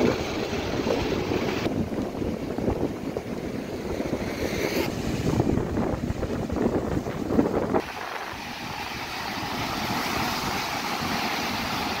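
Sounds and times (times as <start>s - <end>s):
heavy waves breaking on shore: 0.0s - 12.0s
wind buffeting microphone: 0.0s - 12.0s.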